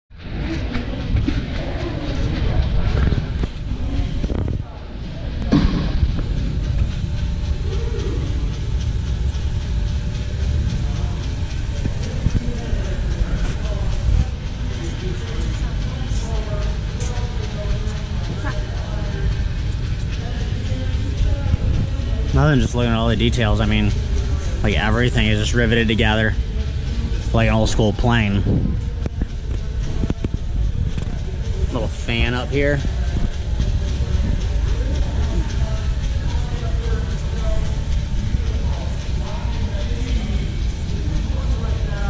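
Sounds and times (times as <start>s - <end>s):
crowd chatter: 0.1s - 42.0s
steady low rumble: 0.1s - 42.0s.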